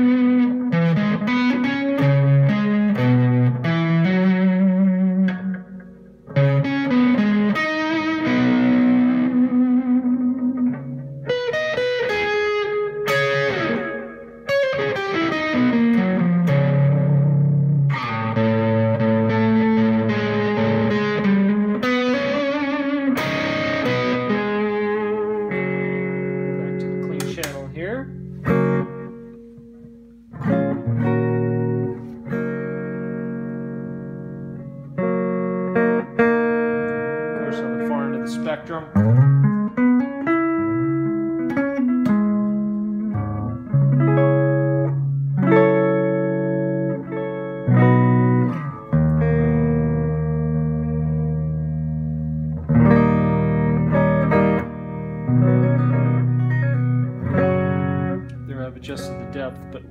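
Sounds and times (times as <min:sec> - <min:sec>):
electric guitar chords with delay: 0:00.0 - 0:59.9
guitar sliding notes: 0:00.0 - 0:59.9.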